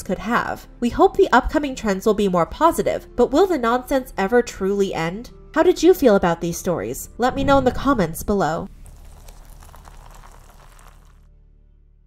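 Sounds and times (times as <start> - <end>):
low steady music tones: 0.0 - 12.0
fizzing liquid: 8.7 - 11.2.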